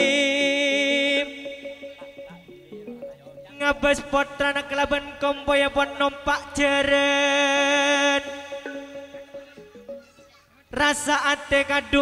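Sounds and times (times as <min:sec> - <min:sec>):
low melody stepping downward: 0:00.0 - 0:10.0
bright loud melody instrument: 0:00.0 - 0:12.0.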